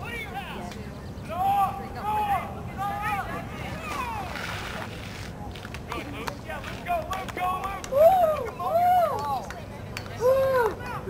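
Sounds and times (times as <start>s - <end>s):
distant shouting voices: 0.0s - 4.4s, 6.4s - 11.0s.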